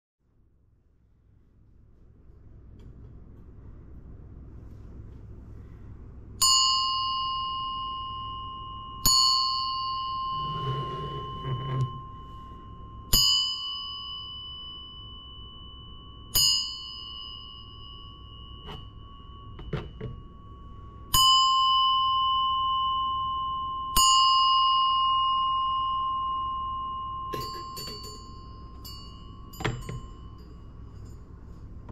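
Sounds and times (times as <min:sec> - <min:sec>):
small brass bell ringing: 0:06.4 - 0:10.8, 0:12.0 - 0:31.4.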